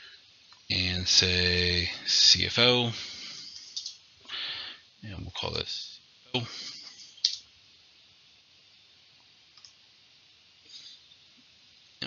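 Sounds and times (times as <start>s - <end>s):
person speaking: 0.7s - 3.5s, 5.0s - 7.3s
computer mouse click: 3.7s - 4.0s, 7.2s - 7.4s, 9.6s - 9.8s.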